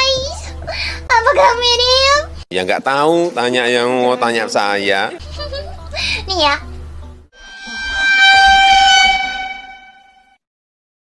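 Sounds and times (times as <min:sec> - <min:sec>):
low rumble: 0:07.4 - 0:10.2
steady held note: 0:07.4 - 0:10.4.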